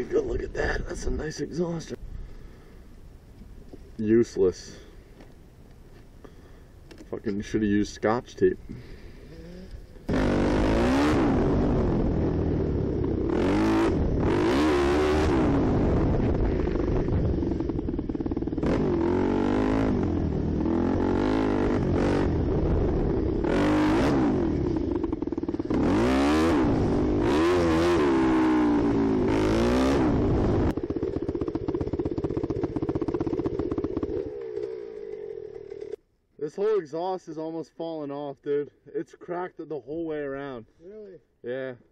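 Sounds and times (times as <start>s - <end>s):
dirt bike engine revving: 9.8s - 36.0s.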